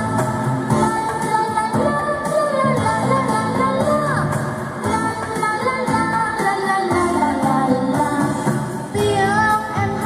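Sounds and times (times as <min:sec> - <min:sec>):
girl singing into a microphone: 0:00.0 - 0:10.0
musical accompaniment: 0:00.0 - 0:10.0.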